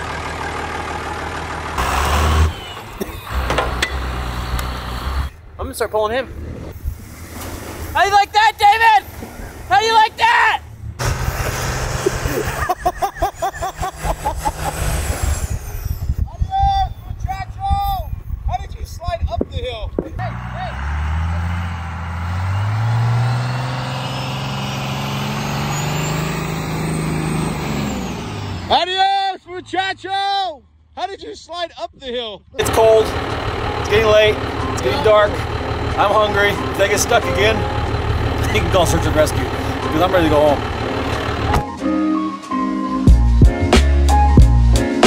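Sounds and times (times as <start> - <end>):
truck engine revving: 0.0 - 18.5, 19.3 - 29.0, 32.6 - 42.2.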